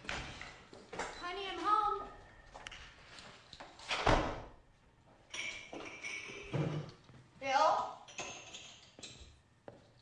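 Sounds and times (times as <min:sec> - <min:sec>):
door swinging shut with thud: 0:03.9 - 0:04.5.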